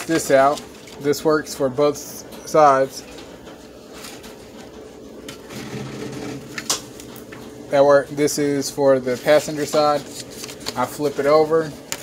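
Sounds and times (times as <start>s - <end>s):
card rustling: 9.0s - 12.0s.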